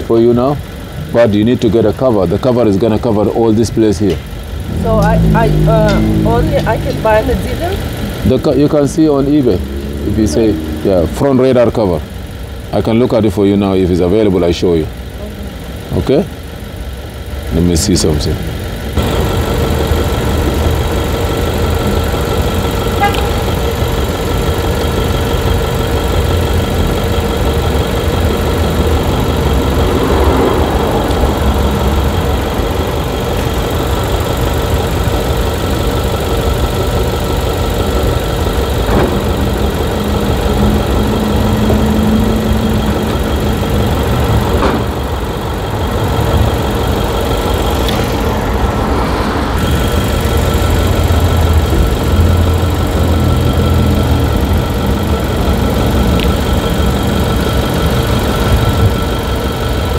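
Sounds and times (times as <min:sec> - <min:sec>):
car engine idling: 0:00.0 - 0:59.9.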